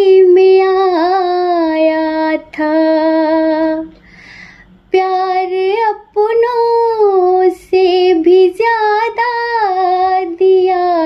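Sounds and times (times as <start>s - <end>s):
singer breathing: 4.0s - 4.8s
high voice singing unaccompanied: 5.0s - 11.0s.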